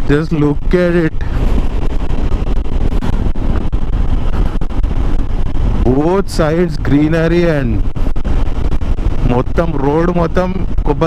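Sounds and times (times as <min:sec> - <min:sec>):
wind buffeting microphone: 0:00.0 - 0:11.0
motorcycle engine running: 0:01.1 - 0:10.8.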